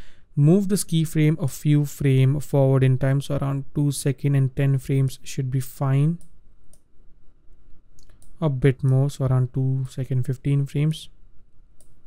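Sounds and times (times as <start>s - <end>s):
faint computer mouse clicks: 7.9s - 8.4s, 11.8s - 12.0s.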